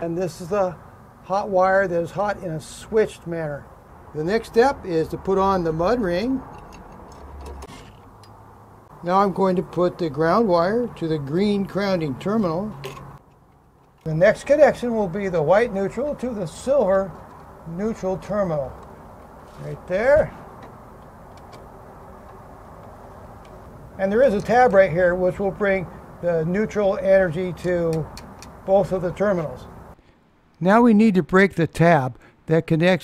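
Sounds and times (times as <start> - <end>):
steady low background noise: 0.0 - 33.0
faint handling noise with clicks: 12.7 - 14.1, 20.5 - 23.7.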